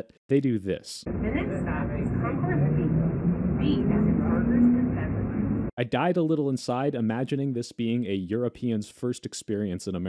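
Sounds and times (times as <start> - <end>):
automated train announcement: 1.1 - 5.7
moving train rumble: 1.1 - 5.7.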